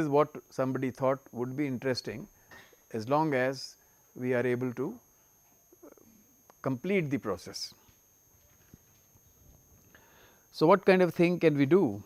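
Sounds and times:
faint electronic hiss: 0.0 - 12.0.

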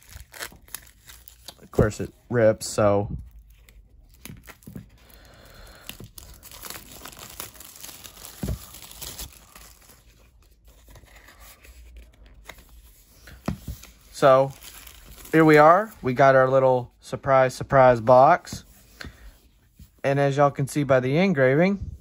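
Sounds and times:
plastic wrap crackling and tearing: 0.0 - 1.8, 3.4 - 12.2, 14.1 - 15.9.

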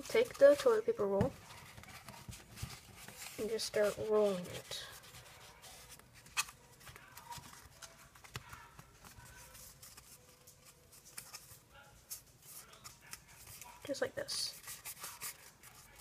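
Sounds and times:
paper rustling: 0.0 - 16.0.

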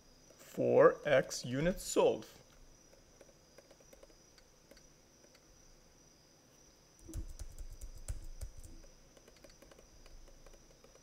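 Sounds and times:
stylus tapping on a screen: 7.0 - 11.0.

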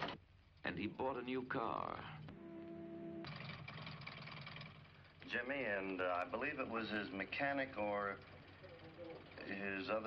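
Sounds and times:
car engine running: 1.8 - 10.0.

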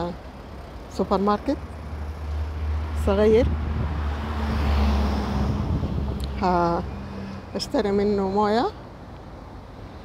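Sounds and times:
car driving past: 2.2 - 7.5
wind rumble on microphone: 3.2 - 6.5.

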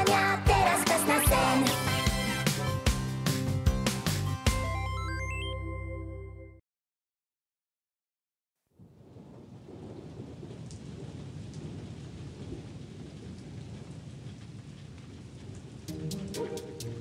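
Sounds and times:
steady rainfall: 9.0 - 17.0.

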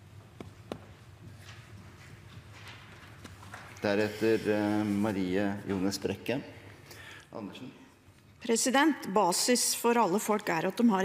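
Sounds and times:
soft footsteps: 0.0 - 3.8.

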